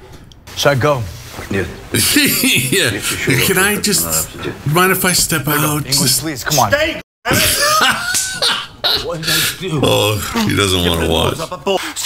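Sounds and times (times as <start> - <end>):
men laughing: 1.9 - 5.0, 7.3 - 11.8.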